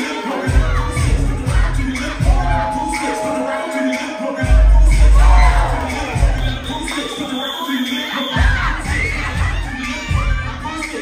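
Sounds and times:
hip-hop dance music: 0.0s - 11.0s
children cheering and shouting: 2.2s - 7.3s, 8.3s - 11.0s.

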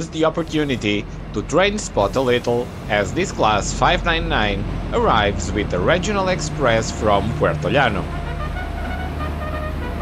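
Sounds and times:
diesel train engine drone: 0.0s - 10.0s.

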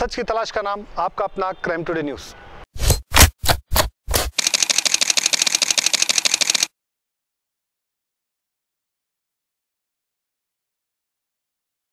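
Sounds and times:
rapid camera shutter clicks: 4.1s - 6.7s.

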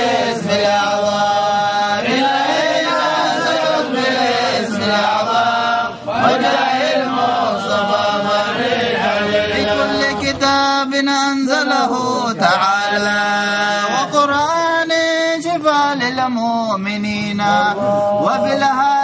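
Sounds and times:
men chanting: 0.0s - 19.0s.

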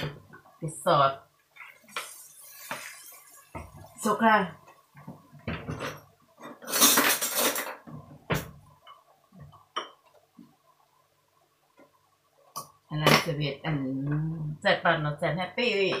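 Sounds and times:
utensils clinking: 5.7s - 7.8s.

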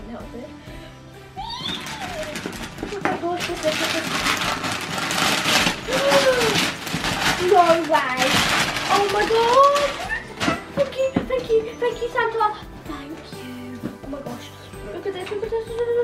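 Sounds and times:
quiet background music: 0.0s - 16.0s
wrapping paper tearing: 1.6s - 10.9s.

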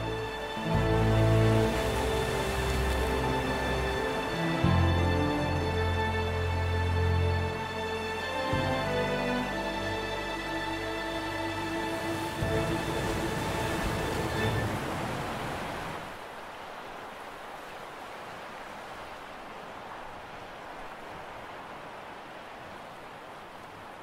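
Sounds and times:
orchestral music: 0.0s - 15.2s
surf: 0.0s - 16.2s
wind: 0.0s - 24.0s.

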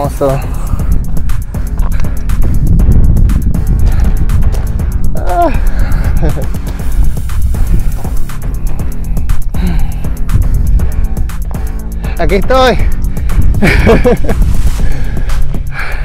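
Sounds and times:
background music: 0.0s - 16.0s
wind buffeting microphone: 0.0s - 16.0s.

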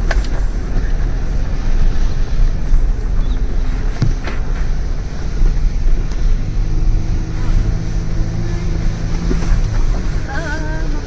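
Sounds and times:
car engine running: 0.0s - 11.0s
tyres rumbling over dirt track: 0.0s - 11.0s.

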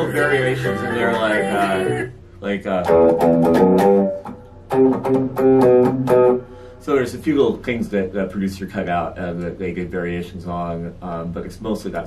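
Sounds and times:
overdriven electric guitar riff: 2.8s - 6.8s.

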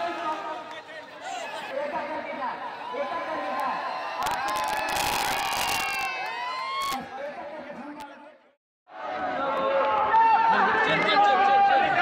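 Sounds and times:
crowd cheering and shouting: 0.0s - 8.3s, 8.9s - 12.0s.

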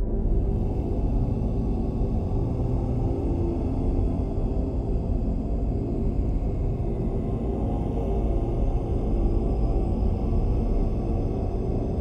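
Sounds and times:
dark ambient drone music: 0.0s - 12.0s.

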